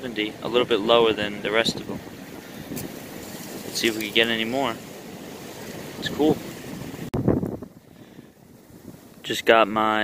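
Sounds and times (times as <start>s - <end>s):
wind noise on microphone: 0.6s - 10.0s
man speaking: 3.8s - 4.8s, 6.0s - 6.4s.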